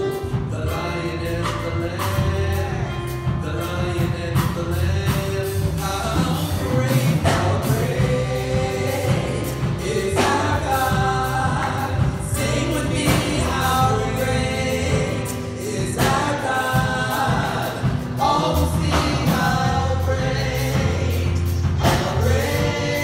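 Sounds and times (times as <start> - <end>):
group singing a worship song: 0.0 - 23.0
instrumental backing with bass: 0.0 - 23.0.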